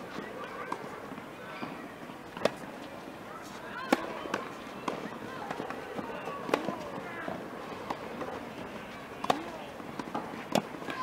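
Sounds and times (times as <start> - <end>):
tennis ball struck by racket: 2.4 - 2.6, 3.8 - 6.8, 9.2 - 11.0.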